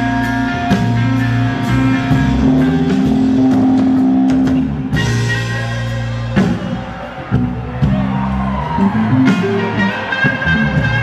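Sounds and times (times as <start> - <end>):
electric guitar: 0.0 - 11.0
live rock band: 0.0 - 11.0.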